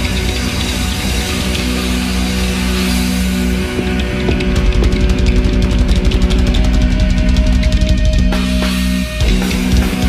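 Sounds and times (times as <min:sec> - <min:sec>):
distorted electric guitars: 0:00.0 - 0:10.0
fast drumming: 0:00.0 - 0:10.0.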